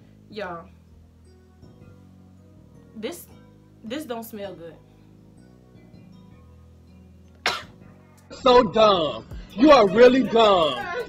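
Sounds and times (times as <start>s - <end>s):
faint background music: 0.0s - 11.0s
woman coughing: 7.4s - 7.8s.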